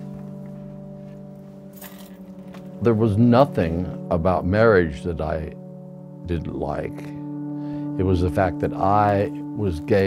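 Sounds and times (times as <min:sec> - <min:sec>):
background music chord: 0:00.0 - 0:10.0
keys jingling: 0:01.6 - 0:02.8.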